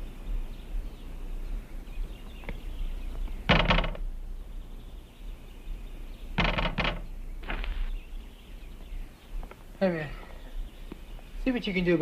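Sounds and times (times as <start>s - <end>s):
shop door rattling: 3.5s - 4.1s, 6.4s - 7.1s.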